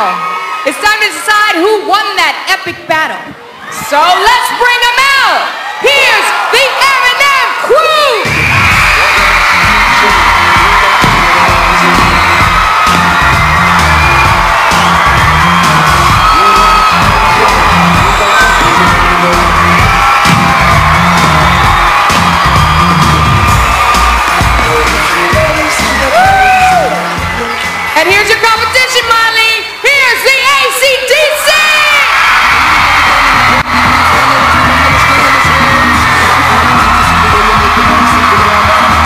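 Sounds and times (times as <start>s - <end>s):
audience cheering and whooping: 0.0s - 1.2s, 3.5s - 29.1s, 29.7s - 39.0s
pop dance music with heavy bass: 8.3s - 28.7s, 32.4s - 39.0s.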